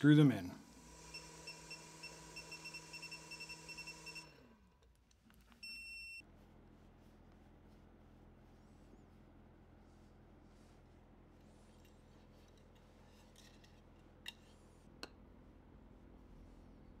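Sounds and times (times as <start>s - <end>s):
cordless drill whining: 0.8s - 4.6s.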